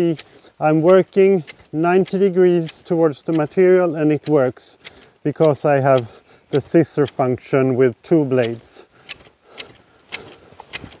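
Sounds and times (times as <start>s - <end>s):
hedge shears snipping: 0.0s - 11.0s.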